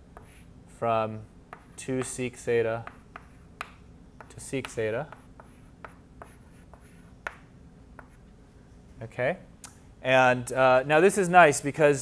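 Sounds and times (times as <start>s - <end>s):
chalk scraping on a chalkboard: 0.2s - 0.5s, 1.5s - 8.2s.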